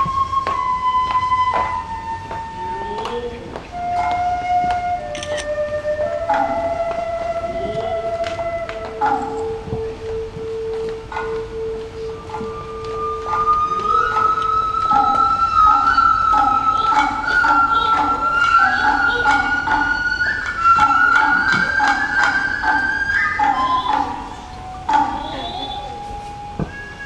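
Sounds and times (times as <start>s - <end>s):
bamboo flute long notes: 0.0s - 27.0s
low pulsing flute notes: 0.0s - 27.0s.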